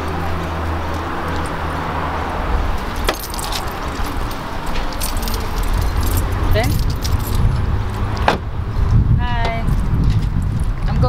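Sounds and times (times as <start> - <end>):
steady low rumble: 0.0 - 11.0
keys jangling: 2.8 - 8.3.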